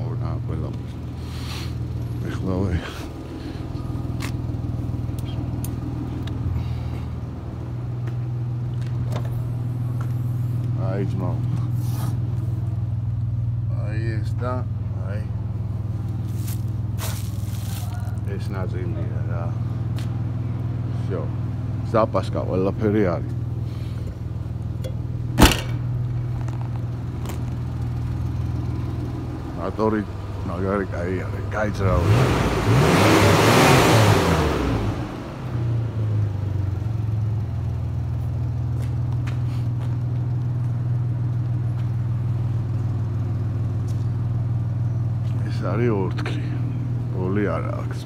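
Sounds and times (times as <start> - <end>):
car engine idling: 0.0 - 48.0
tailgate slamming: 25.3 - 26.0.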